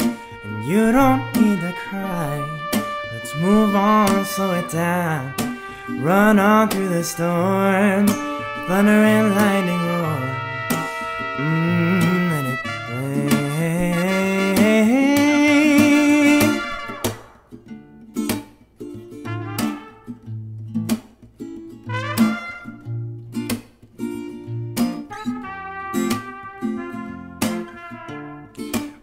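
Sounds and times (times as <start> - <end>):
trumpet notes: 0.0 - 17.5, 19.3 - 20.2, 21.9 - 23.0, 25.0 - 29.0
picked acoustic guitar: 0.0 - 29.0.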